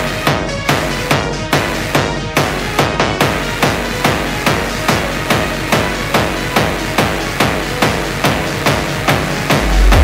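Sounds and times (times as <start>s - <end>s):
techno music: 0.0s - 10.0s
low bass: 9.5s - 10.0s
sharp percussive hit: 9.5s - 10.0s.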